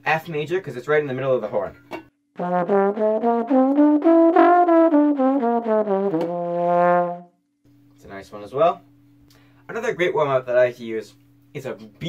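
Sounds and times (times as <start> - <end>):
trombone playing a scale: 2.4 - 7.3.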